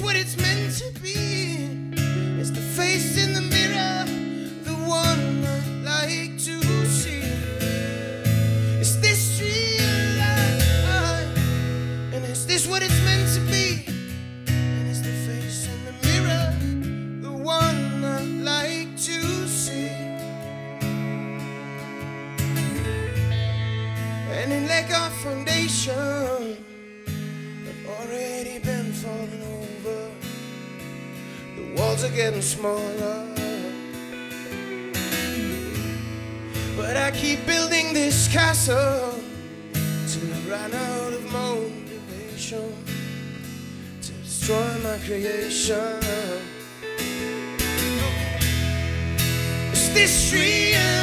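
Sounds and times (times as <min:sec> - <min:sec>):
person singing: 0:00.0 - 0:13.9, 0:14.9 - 0:21.8, 0:24.2 - 0:30.3, 0:31.4 - 0:42.9, 0:44.0 - 0:48.6, 0:49.7 - 0:51.0
strummed acoustic guitar: 0:00.0 - 0:51.0
cello: 0:01.6 - 0:13.9, 0:17.7 - 0:51.0
bass and drums: 0:47.6 - 0:51.0.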